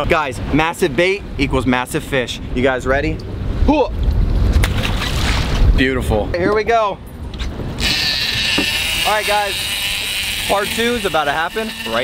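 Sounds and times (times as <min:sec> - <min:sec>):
fishing reel line buzzing out: 0:07.8 - 0:12.0.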